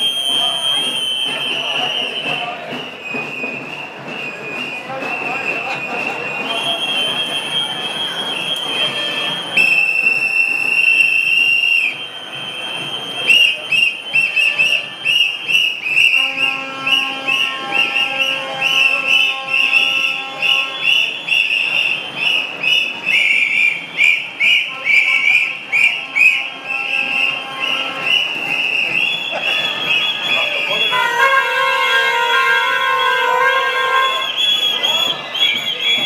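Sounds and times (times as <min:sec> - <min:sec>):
whistles blowing: 0:00.0 - 0:36.0.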